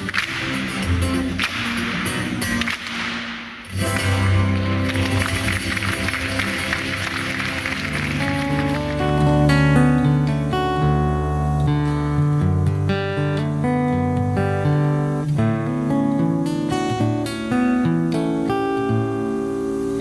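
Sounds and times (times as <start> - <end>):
fingerstyle acoustic guitar: 0.0 - 20.0.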